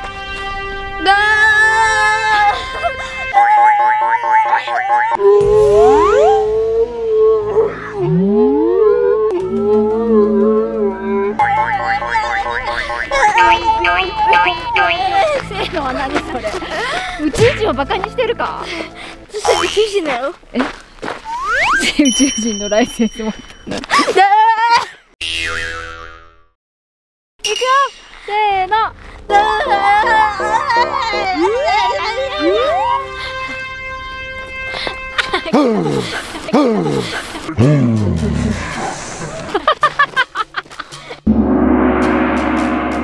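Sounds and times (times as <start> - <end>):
low wavering tone with swoops: 5.2 - 11.4, 41.3 - 43.0
ringing bending comic tone: 21.3 - 23.8
pulsing electronic tone: 41.3 - 43.0.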